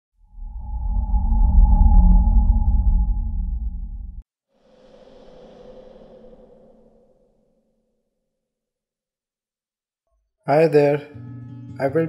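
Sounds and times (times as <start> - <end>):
deep rumbling drone: 0.2 - 8.0.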